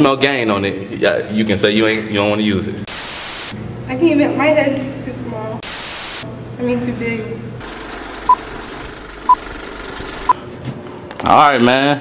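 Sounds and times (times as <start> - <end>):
projector-like hiss: 2.9 - 3.6, 5.6 - 6.2.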